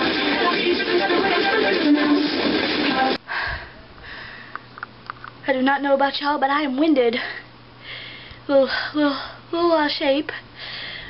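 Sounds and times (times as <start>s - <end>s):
music: 0.0s - 3.2s.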